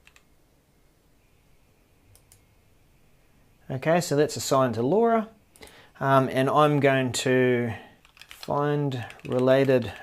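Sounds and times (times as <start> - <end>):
keyboard or mouse clicks: 0.0 - 0.3, 2.1 - 2.4, 8.0 - 10.0.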